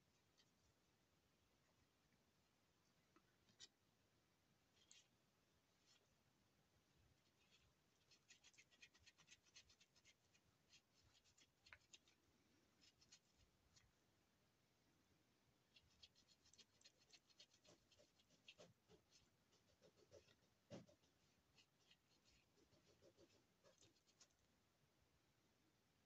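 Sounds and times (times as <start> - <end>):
wet wipe scratching on rubber stamp: 16.0 - 24.3.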